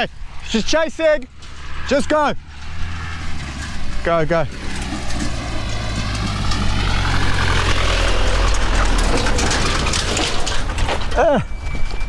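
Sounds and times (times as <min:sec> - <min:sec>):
pickup truck engine driving past: 0:01.2 - 0:11.1.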